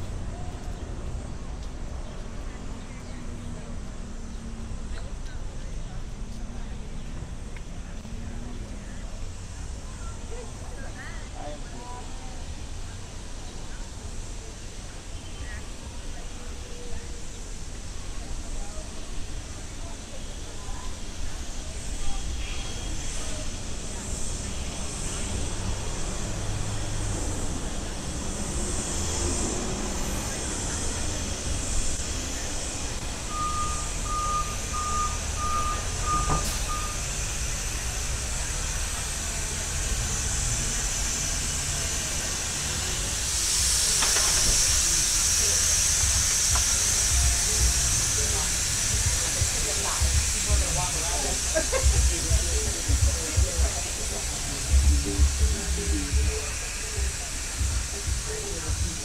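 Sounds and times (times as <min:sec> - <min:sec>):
passing traffic: 0:00.0 - 0:59.0
steady high hiss: 0:08.6 - 0:59.0
electronic beeps: 0:33.3 - 0:37.0.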